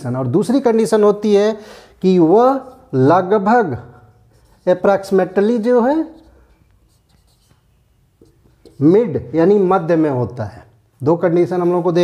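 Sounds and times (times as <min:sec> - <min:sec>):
marker writing on whiteboard: 0:02.2 - 0:10.0.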